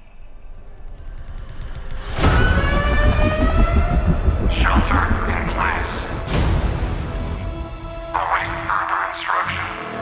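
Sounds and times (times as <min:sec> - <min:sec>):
low rumble: 0:00.8 - 0:07.8
siren-like wail rising in pitch: 0:02.0 - 0:06.5.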